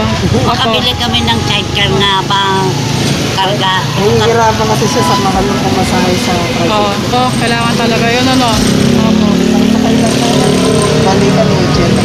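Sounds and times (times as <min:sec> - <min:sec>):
people talking: 0:00.0 - 0:12.0
vehicle engine running: 0:00.0 - 0:12.0.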